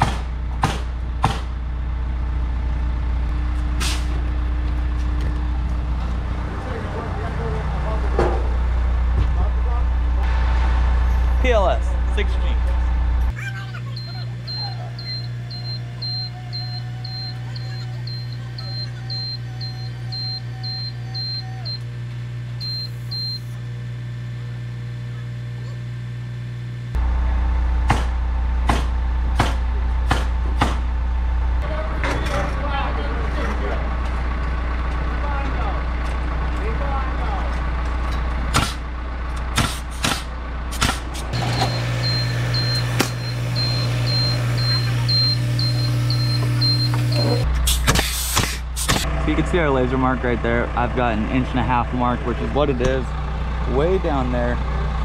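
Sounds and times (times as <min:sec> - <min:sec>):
motion alarm beeping: 0:13.8 - 0:21.9, 0:22.6 - 0:23.6, 0:41.4 - 0:47.5
hydraulic pump motor hum: 0:14.0 - 0:25.4, 0:37.8 - 0:49.8.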